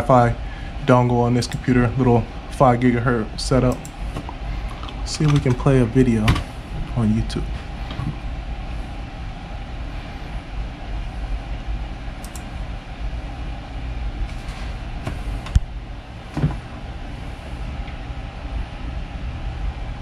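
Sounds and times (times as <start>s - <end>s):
computer fan hum: 0.0s - 20.0s
short clicks: 12.2s - 12.5s.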